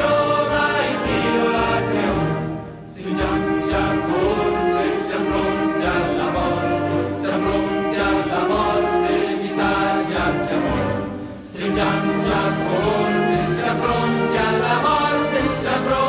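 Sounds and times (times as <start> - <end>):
choir with orchestra: 0.0 - 16.0.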